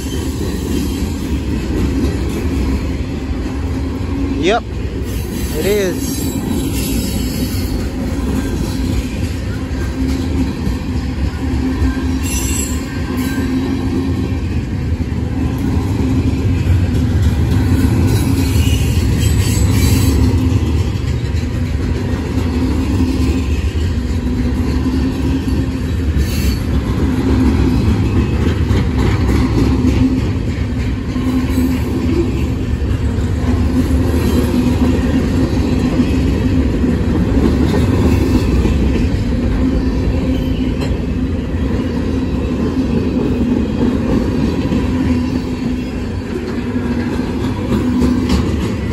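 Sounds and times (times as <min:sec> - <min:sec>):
freight train cars rumbling past: 0:00.0 - 0:48.9.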